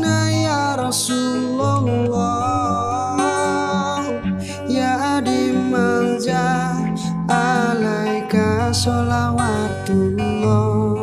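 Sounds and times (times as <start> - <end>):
instrumental backing: 0.0 - 11.0
man singing devotional song: 0.0 - 11.0.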